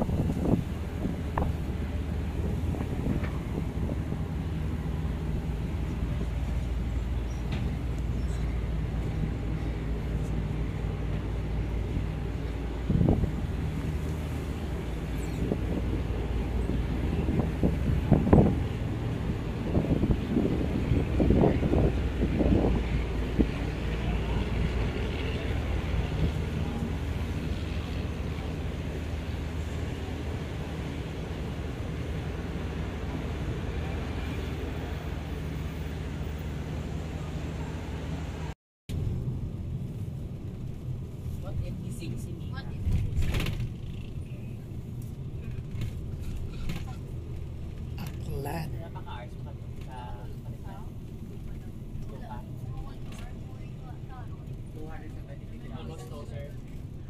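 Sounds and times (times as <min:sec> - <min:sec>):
low engine hum: 0:00.0 - 0:57.0.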